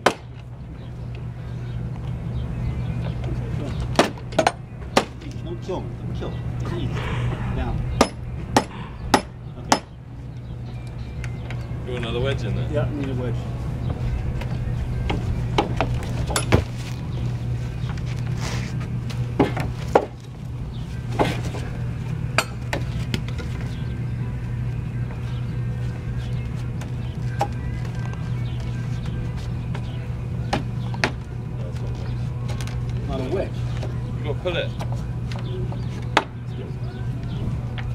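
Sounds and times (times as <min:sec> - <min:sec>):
steady low hum: 0:00.0 - 0:37.9.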